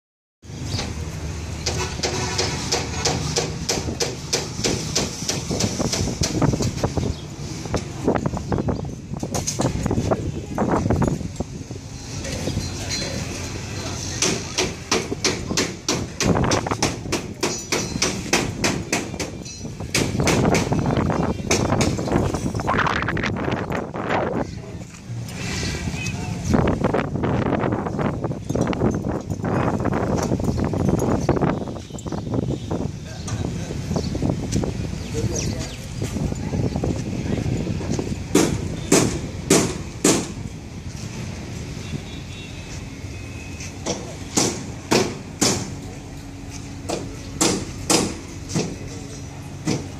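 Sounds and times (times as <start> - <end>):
sharp knocks: 1.6 - 6.8, 14.2 - 20.9, 21.5 - 22.3, 38.3 - 40.4, 43.8 - 45.8, 46.9 - 48.8
people talking: 12.2 - 16.3, 33.0 - 33.9, 35.0 - 38.7.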